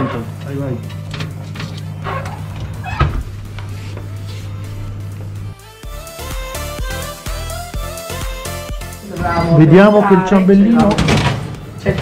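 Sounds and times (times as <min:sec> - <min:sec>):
oven electrical hum: 0:00.0 - 0:05.7
plucked background music: 0:00.0 - 0:12.0
oven door shutting knock: 0:01.1 - 0:03.6, 0:10.6 - 0:12.0.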